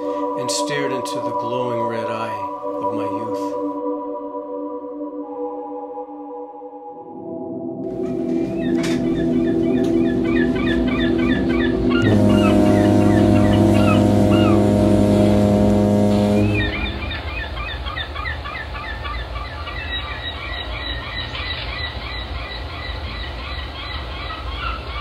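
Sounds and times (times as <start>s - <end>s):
sustained droning tones: 0.0s - 24.9s
birds chirping: 7.9s - 25.0s.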